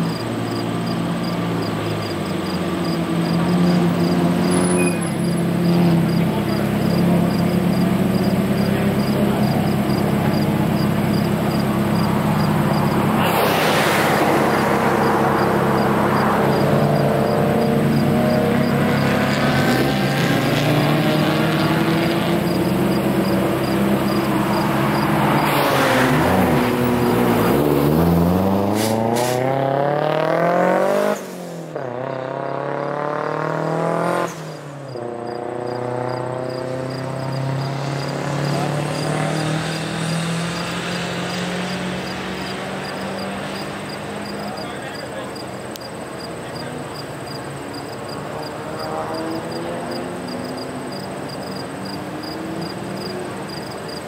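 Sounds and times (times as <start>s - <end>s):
car engine accelerating hard: 0.0s - 54.0s
race cars passing: 0.0s - 54.0s.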